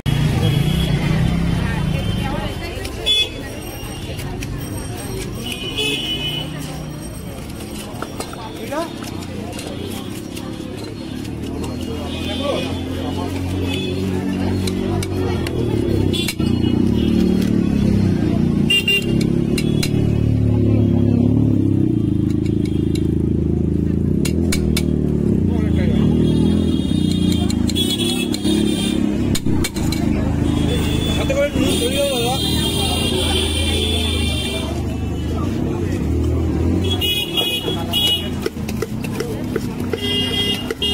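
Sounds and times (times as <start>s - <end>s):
traffic: 0.0s - 40.9s
people's voices: 0.2s - 40.9s
car horn toots: 18.7s - 20.1s, 36.8s - 38.5s, 39.9s - 40.9s.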